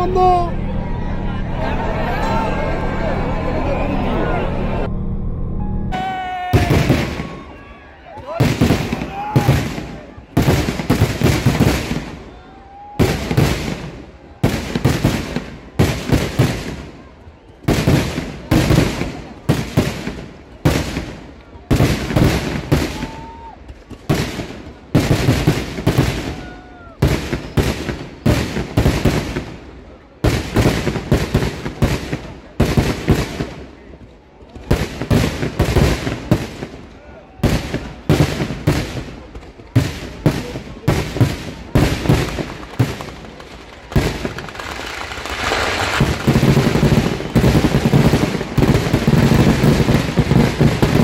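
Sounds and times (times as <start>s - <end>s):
fireworks explosions: 5.9s - 51.0s.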